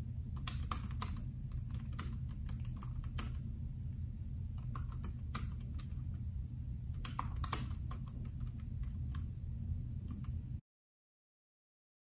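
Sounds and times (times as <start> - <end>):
steady low hum: 0.0 - 10.6
keyboard key clicks: 0.4 - 3.4, 4.6 - 6.1, 7.0 - 9.3.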